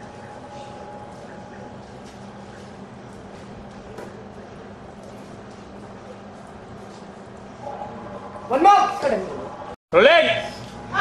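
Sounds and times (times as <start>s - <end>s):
background hum: 0.0s - 11.0s.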